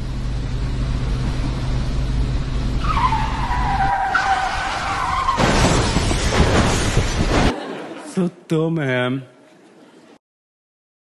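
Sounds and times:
vehicle engine humming: 0.0s - 5.4s
high skidding screech: 2.8s - 7.3s.

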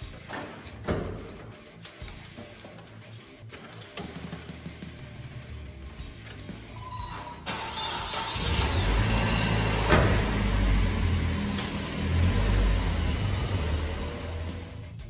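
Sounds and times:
car engine running: 8.1s - 15.0s.

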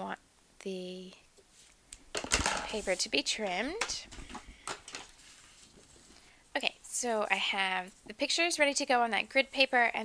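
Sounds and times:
paper rustling: 1.6s - 6.3s.

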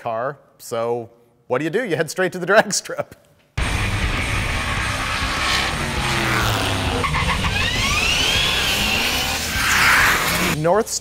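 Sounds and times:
race car engine at full throttle: 3.6s - 10.6s
tires squealing: 3.8s - 10.6s.

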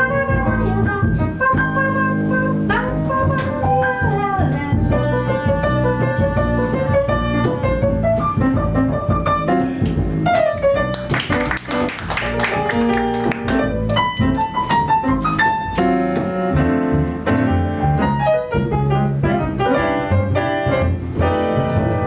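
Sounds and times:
jazz piano runs: 0.0s - 22.0s
upright double bass: 0.0s - 22.0s.

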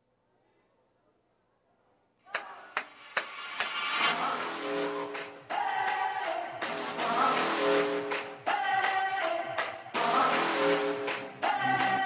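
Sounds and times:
dance music over loudspeakers: 2.9s - 12.0s.

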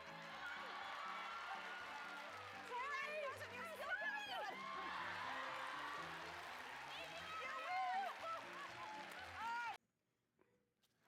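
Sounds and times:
audience shrieking and laughing: 0.0s - 2.4s, 4.4s - 9.3s.

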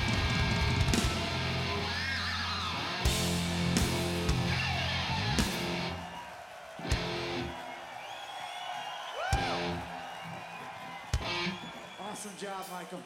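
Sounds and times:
electric guitar chord stabs: 0.0s - 5.9s
crowd noise: 0.0s - 13.0s.

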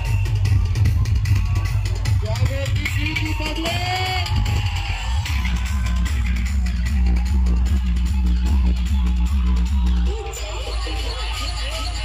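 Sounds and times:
loud dance music with booming bass: 0.0s - 12.0s.

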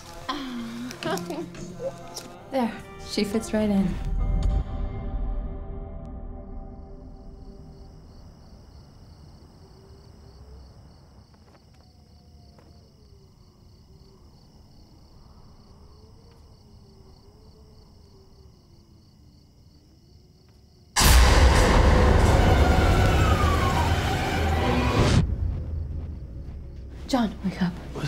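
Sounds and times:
crickets chirring: 7.1s - 21.0s, 25.2s - 28.0s
loud burst with scream: 21.0s - 25.3s.

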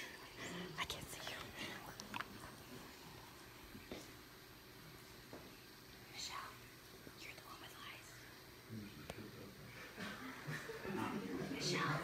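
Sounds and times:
people whispering: 0.1s - 2.8s, 7.2s - 9.8s, 10.9s - 12.0s.

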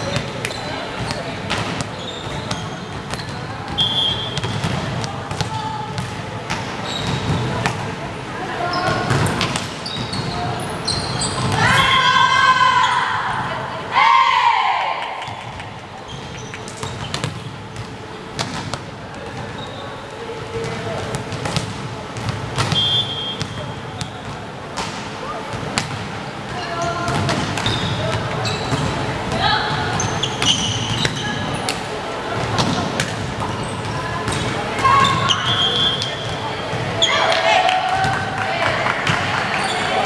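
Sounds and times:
shoe squeaks: 0.0s - 1.2s, 1.8s - 4.6s, 6.8s - 7.6s, 8.6s - 11.6s, 16.0s - 18.3s, 19.5s - 20.0s, 22.6s - 24.4s, 26.6s - 29.0s, 29.8s - 31.7s, 33.4s - 37.3s
volleyball hits: 0.0s - 8.0s, 8.8s - 10.4s, 16.7s - 19.5s, 20.6s - 26.2s, 27.0s - 40.0s
referee's whistle: 3.7s - 4.5s, 22.7s - 24.2s, 35.0s - 36.4s
players shouting and cheering: 11.4s - 15.5s, 34.0s - 40.0s.

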